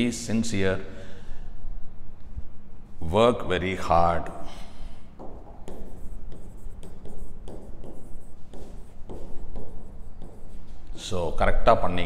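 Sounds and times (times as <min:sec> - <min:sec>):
stylus tapping on screen: 0:05.2 - 0:10.6.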